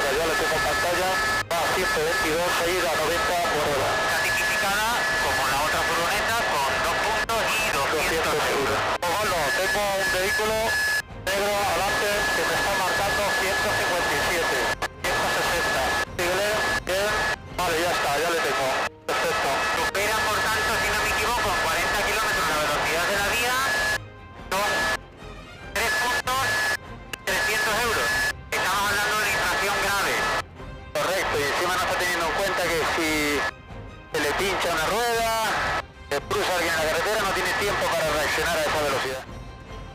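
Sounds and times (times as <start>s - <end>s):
men talking over intercom: 0.0s - 25.0s, 25.8s - 33.5s, 34.1s - 39.3s
steady high whine: 0.0s - 25.0s, 25.8s - 30.4s, 34.2s - 35.8s
helicopter cabin noise: 0.0s - 25.1s, 25.8s - 30.4s, 34.2s - 39.1s
background music: 0.0s - 39.9s.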